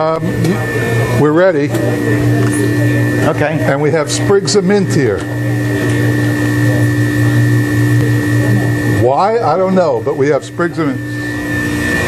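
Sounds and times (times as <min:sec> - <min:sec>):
freezer machine hum: 0:00.0 - 0:12.0
thin high whine: 0:00.0 - 0:12.0.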